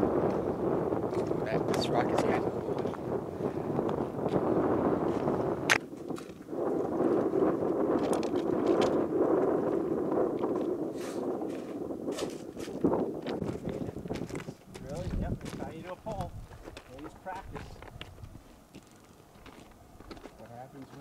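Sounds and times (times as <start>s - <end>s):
wind gusting across microphone: 0.0s - 21.0s.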